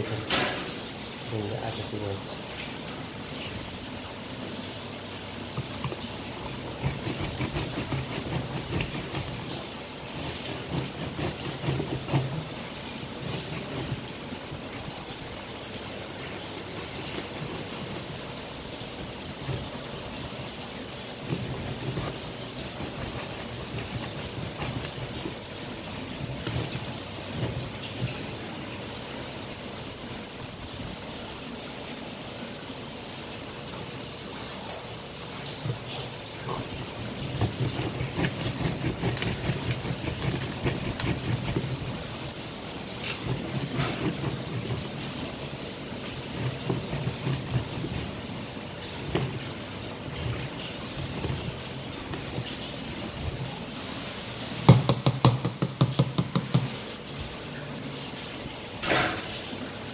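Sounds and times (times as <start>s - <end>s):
steady hiss: 0.0s - 59.9s
hand grinder scraping and crunching: 5.5s - 15.2s, 16.1s - 20.1s, 21.2s - 28.4s, 36.5s - 42.4s, 43.0s - 48.3s.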